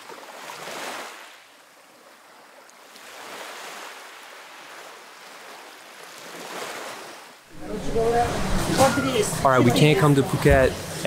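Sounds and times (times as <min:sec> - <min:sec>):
small waves washing onto shore: 0:00.0 - 0:09.5.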